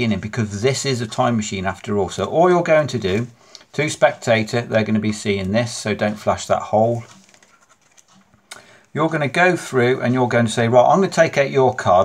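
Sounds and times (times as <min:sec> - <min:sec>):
playing cards rustling: 0:00.0 - 0:12.0.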